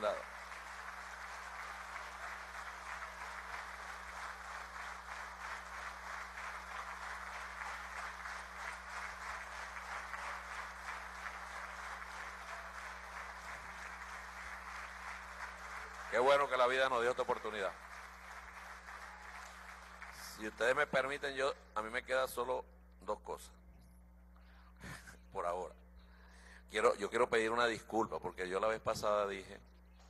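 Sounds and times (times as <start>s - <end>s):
crowd applauding: 0.0s - 21.3s.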